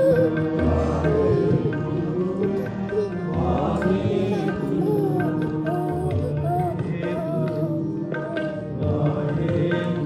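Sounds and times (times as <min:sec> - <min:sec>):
sung chant: 0:00.0 - 0:10.0
tabla strokes: 0:00.0 - 0:10.0.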